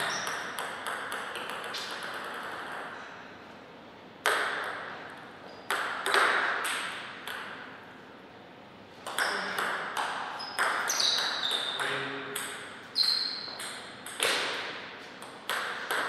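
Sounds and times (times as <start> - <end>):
table tennis ball hits: 0.0 - 3.0, 4.2 - 7.8, 9.0 - 16.0.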